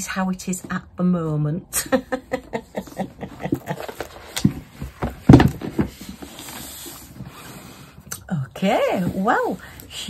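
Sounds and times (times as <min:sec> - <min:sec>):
woman laughing softly: 0:01.8 - 0:04.1.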